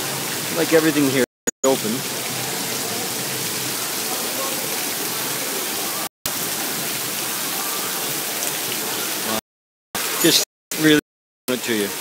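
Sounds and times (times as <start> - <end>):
heavy rain on pavement: 0.0 - 9.4, 10.0 - 12.0.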